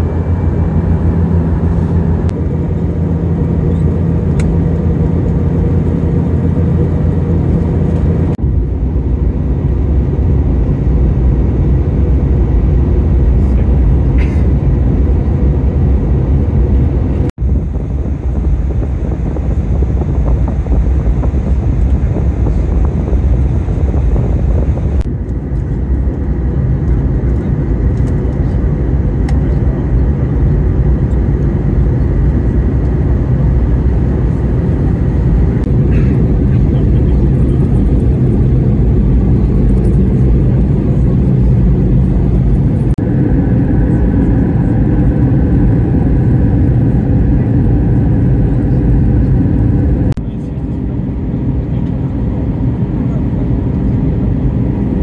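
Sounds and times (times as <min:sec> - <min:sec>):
aircraft cabin engine rumble: 0:00.0 - 0:55.0.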